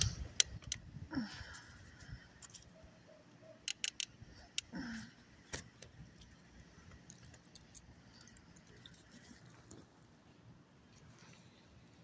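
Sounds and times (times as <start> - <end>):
metal leash clasp clicking: 3.6 - 4.7.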